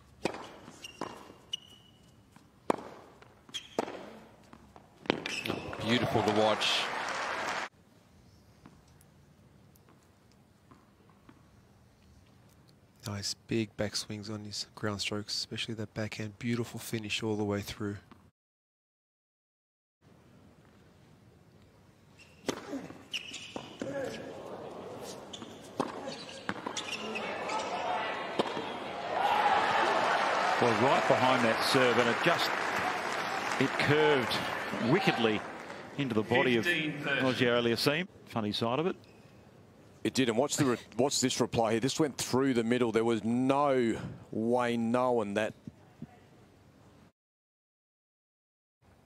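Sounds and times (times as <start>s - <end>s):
ball bouncing on hard court: 0.2s - 1.4s, 2.6s - 4.2s, 5.0s - 5.8s, 25.3s - 27.0s, 28.4s - 28.8s
racket striking tennis ball: 0.2s - 1.4s, 2.6s - 4.2s, 22.4s - 23.0s, 28.3s - 28.7s
shoe squeaks: 0.3s - 2.5s, 3.4s - 4.0s, 5.1s - 5.8s, 22.1s - 24.3s, 25.0s - 27.8s
crowd applause and cheering: 5.6s - 7.7s, 27.4s - 36.2s.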